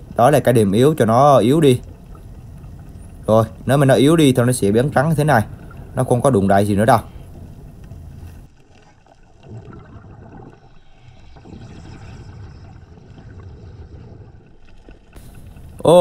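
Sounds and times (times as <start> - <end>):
faint crackles: 0.0 - 16.0
muffled underwater rumble: 0.0 - 16.0.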